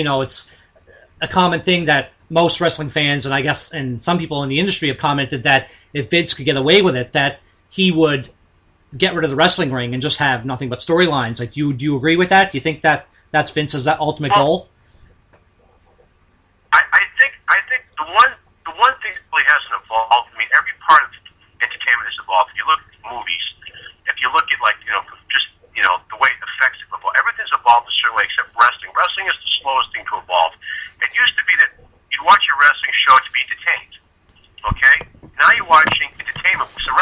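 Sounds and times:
man talking over telephone: 0:00.0 - 0:08.3, 0:09.0 - 0:14.6, 0:16.8 - 0:37.0.

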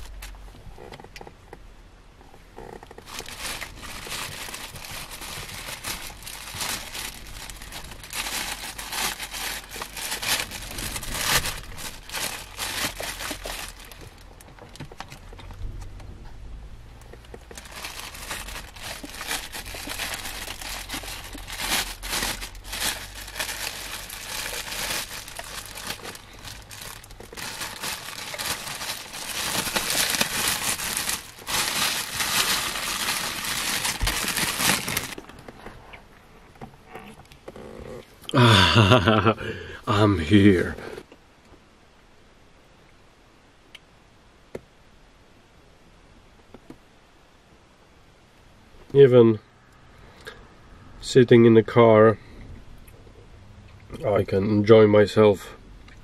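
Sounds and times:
plastic packaging crinkling: 0:00.0 - 0:00.4, 0:02.6 - 0:15.5, 0:17.2 - 0:35.6.

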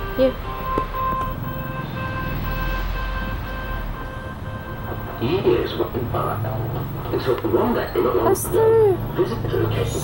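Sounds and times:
soft background music: 0:00.0 - 0:06.5.

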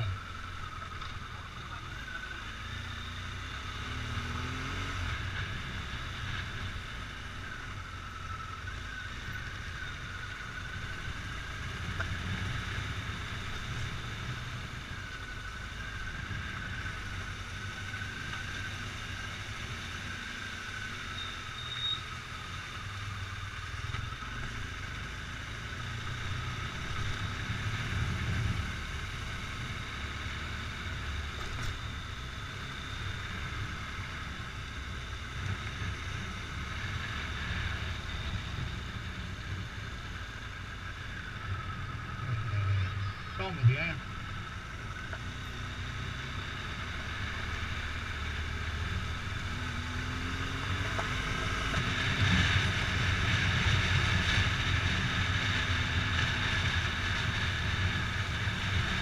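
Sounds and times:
motorcycle engine rumbling: 0:00.0 - 0:59.0.

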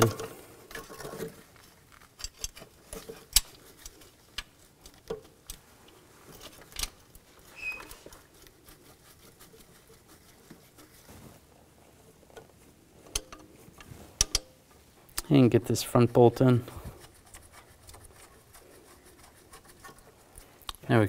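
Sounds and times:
gloved hands clicking on parts: 0:01.6 - 0:08.5, 0:12.3 - 0:15.3
short squeak: 0:07.5 - 0:08.0.

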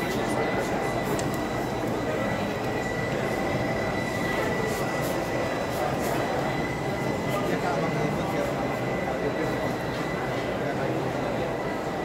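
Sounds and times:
label cutting machine running: 0:00.0 - 0:12.0
thin high whine: 0:00.0 - 0:12.0.

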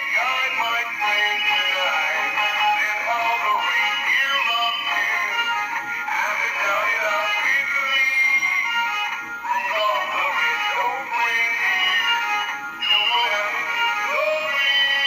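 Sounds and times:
tinny music with singing: 0:00.0 - 0:15.0.

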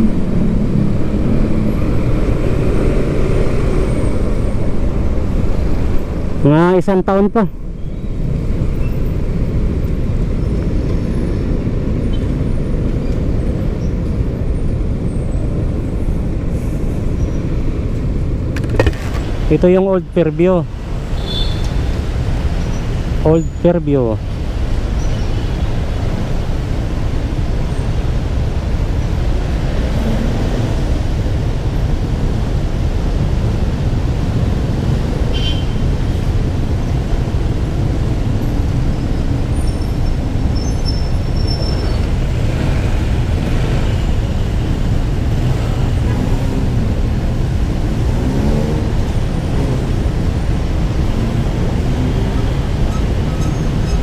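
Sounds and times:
road noise: 0:00.0 - 0:54.0.

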